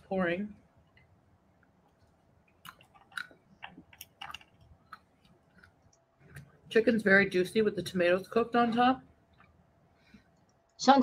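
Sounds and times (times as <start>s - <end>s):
person chewing food: 0.8s - 6.7s.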